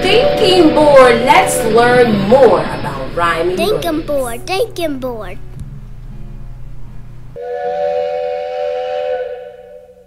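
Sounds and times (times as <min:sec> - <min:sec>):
low music bed: 0:00.0 - 0:10.0.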